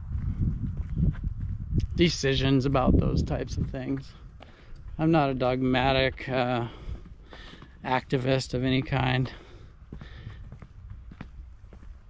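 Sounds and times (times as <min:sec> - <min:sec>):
footsteps on dirt: 0:00.0 - 0:12.0
microphone handling rumble: 0:00.0 - 0:12.0.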